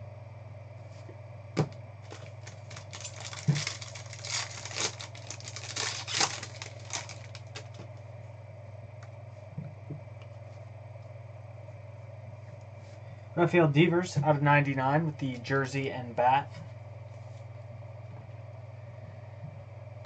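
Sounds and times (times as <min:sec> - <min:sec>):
foil wrapper crinkling and tearing: 0:02.0 - 0:07.8.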